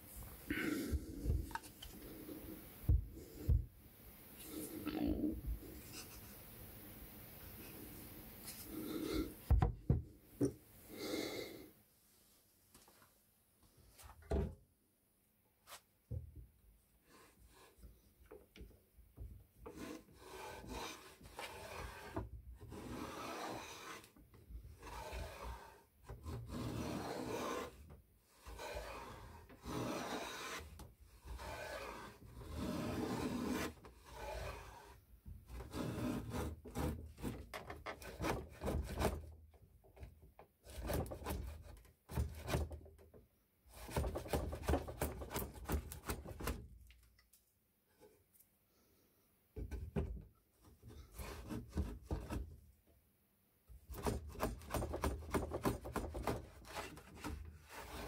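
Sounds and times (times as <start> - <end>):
plane shaving a wooden board: 19.6 - 39.4, 40.6 - 42.8, 43.7 - 46.6, 50.9 - 52.5, 53.9 - 58.0.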